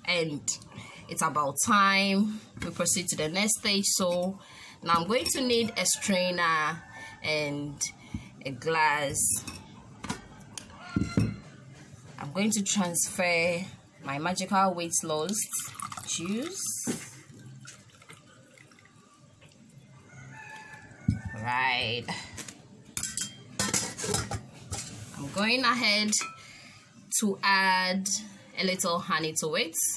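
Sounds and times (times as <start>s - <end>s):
metal clinking against steel bowl: 23.0s - 24.9s, 26.0s - 26.4s.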